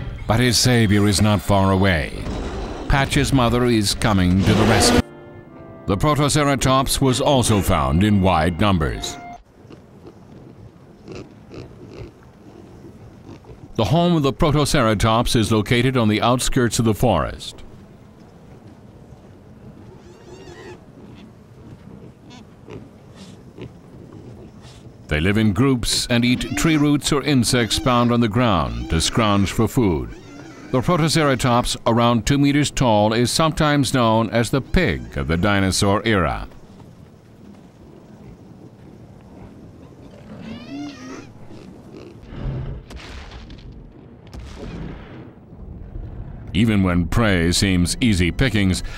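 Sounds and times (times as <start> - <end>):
low steady background: 0.0 - 48.9
animal calls: 19.7 - 36.8, 37.4 - 42.2
short pitched animal squeal: 26.3 - 29.2, 29.8 - 31.6, 40.4 - 41.3.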